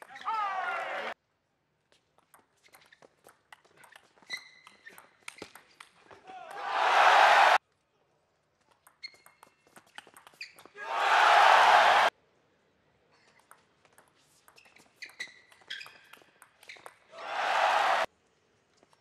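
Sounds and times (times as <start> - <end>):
crowd cheering: 0.2 - 1.2, 6.3 - 7.6, 10.8 - 12.1, 17.1 - 18.1
shoes squeaking on floor: 2.4 - 6.2, 9.0 - 10.8, 14.2 - 17.1.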